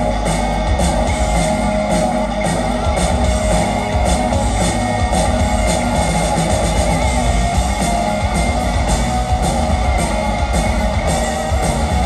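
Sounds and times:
hard rock band playing live: 0.0 - 12.0.

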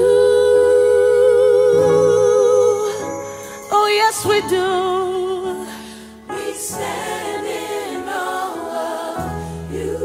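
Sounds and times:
person singing with vibrato: 0.0 - 7.0.

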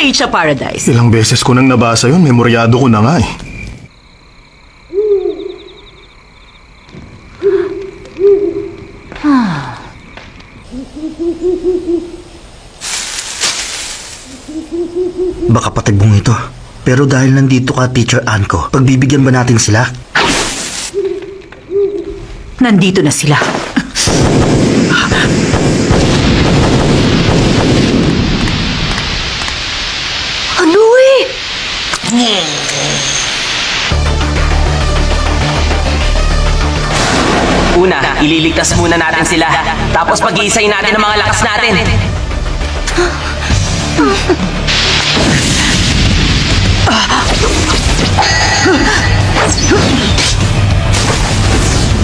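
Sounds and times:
owl hooting: 4.9 - 6.1, 7.4 - 8.9, 10.6 - 12.4, 14.2 - 15.6, 20.9 - 22.3
hissing noise burst: 11.9 - 15.5, 20.1 - 21.1, 24.0 - 36.0, 42.2 - 52.0
tense soundtrack music with bass: 33.9 - 45.3.

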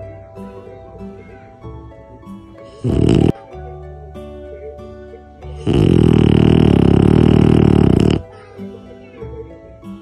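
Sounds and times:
background music: 0.0 - 10.0
puppy snoring: 2.7 - 3.4, 5.5 - 8.3.

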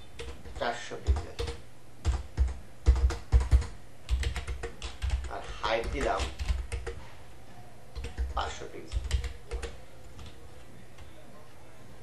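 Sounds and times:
low background hum: 0.0 - 12.0
computer keyboard clicks: 0.2 - 7.0, 8.0 - 10.4.

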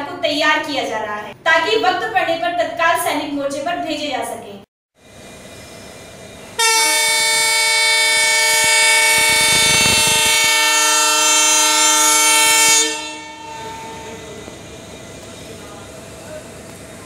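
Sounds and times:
rumble of train coaches rolling: 5.0 - 17.0
train horn blast: 6.6 - 15.0.

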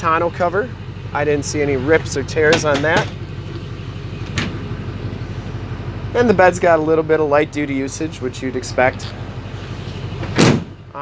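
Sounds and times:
low engine rumble: 0.0 - 11.0
loud thump: 10.2 - 10.8.

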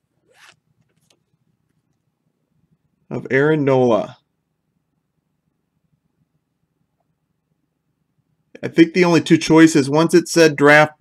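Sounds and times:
card sliding across card: 0.3 - 1.2.

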